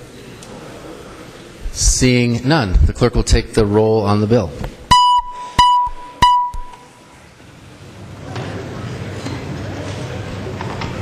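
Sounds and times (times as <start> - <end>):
low hubbub of voices: 0.0 - 1.9, 6.9 - 11.0
high electronic beep: 4.9 - 6.9.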